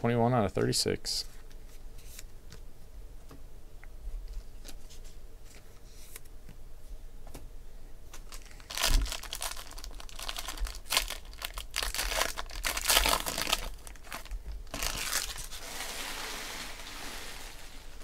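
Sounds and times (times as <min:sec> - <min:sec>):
foil wrapper torn and crinkled: 0:08.2 - 0:15.8.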